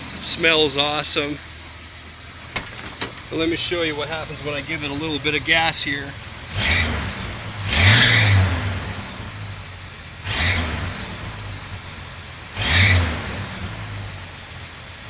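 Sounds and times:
car engine idling and revving: 0.0 - 15.0.

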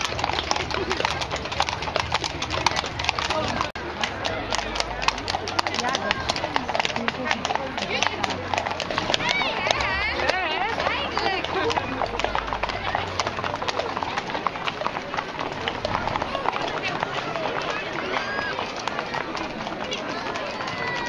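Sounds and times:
crowd chatter: 0.0 - 21.0
horse hooves clopping on bricks: 0.0 - 21.0.

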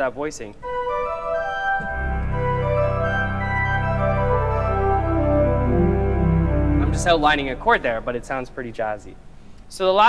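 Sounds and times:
organ playing jazz chords: 0.6 - 9.3
deep organ pedal bass note: 1.8 - 9.0.

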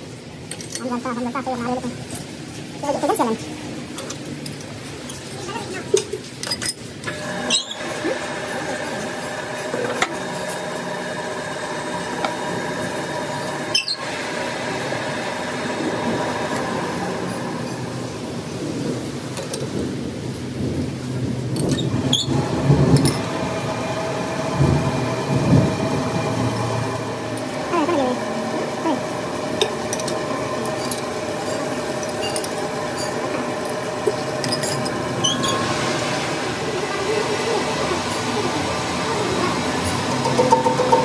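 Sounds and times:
metal lathe humming: 7.0 - 18.7, 21.7 - 41.0.

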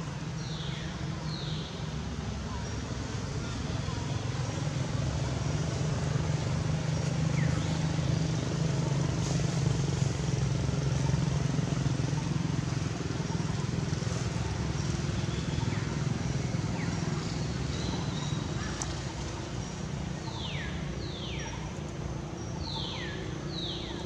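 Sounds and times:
motor traffic engine rumble: 0.0 - 24.0
outdoor ambience: 0.0 - 24.0.

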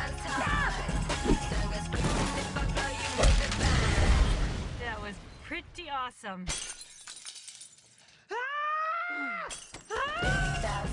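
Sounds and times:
woman screaming: 8.3 - 10.4.

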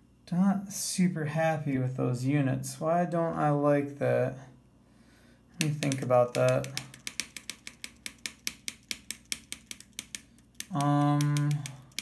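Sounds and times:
rapid small clicks: 5.6 - 12.0.

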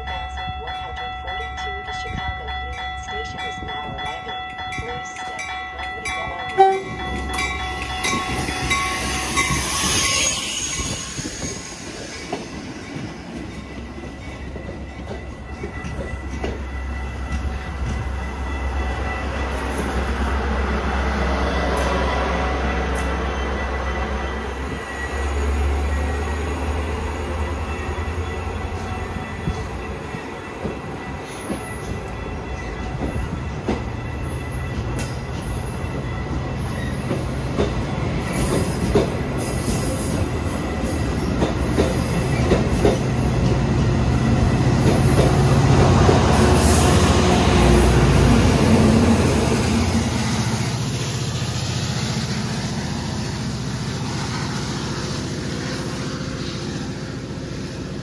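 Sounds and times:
diesel locomotive drone: 0.0 - 58.0
train rolling along platform: 0.0 - 58.0
high wheel squeal: 8.4 - 12.8, 24.4 - 26.6.

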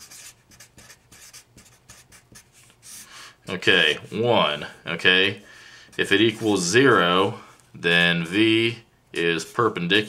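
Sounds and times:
marker scratching on paper: 0.0 - 3.1, 5.9 - 7.0.

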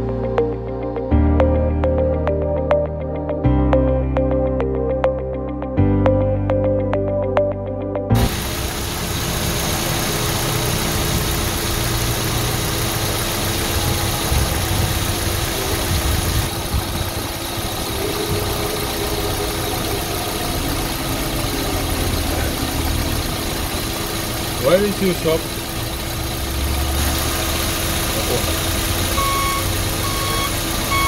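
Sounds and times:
van engine idling: 8.2 - 31.0.

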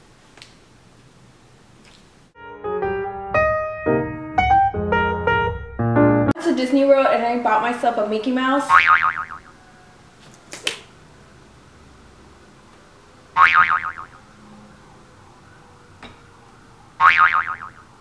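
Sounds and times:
comedy boing twang: 8.7 - 9.5, 13.4 - 14.2, 17.0 - 17.8.

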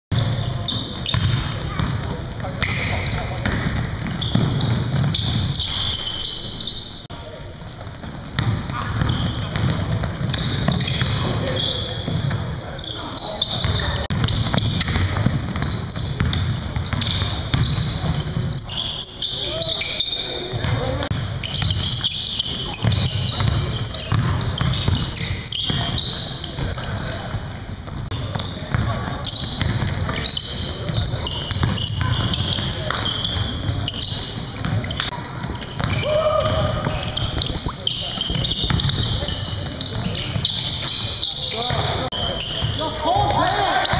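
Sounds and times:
ball bouncing on hardwood court: 0.2 - 5.9, 7.6 - 12.5, 13.6 - 18.5, 22.8 - 25.1, 31.5 - 33.5, 34.6 - 41.9.

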